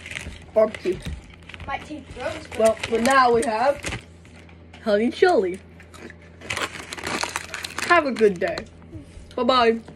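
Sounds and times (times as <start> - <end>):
foil chip bag crinkling: 0.0 - 4.5, 5.8 - 8.7.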